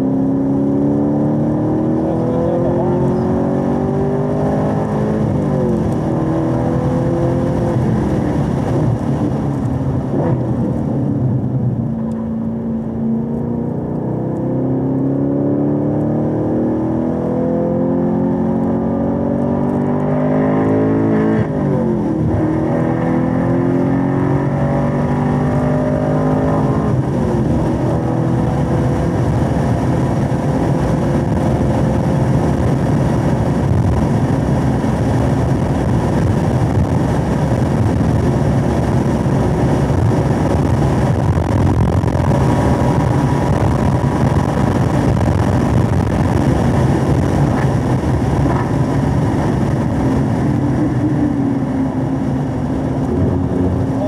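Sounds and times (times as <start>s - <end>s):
car engine revving: 0.0s - 54.0s
engine upshifts: 0.0s - 54.0s.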